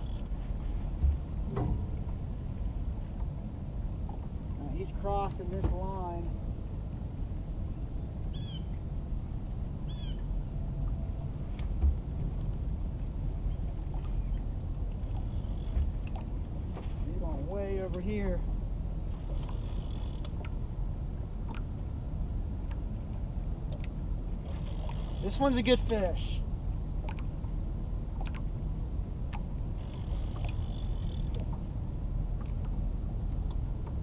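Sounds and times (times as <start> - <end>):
water around boat: 0.0 - 34.0
wind rumble: 0.0 - 34.0.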